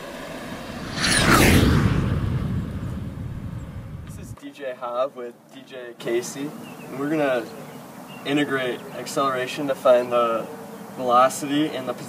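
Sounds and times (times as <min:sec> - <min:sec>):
low rumble: 0:00.0 - 0:04.4.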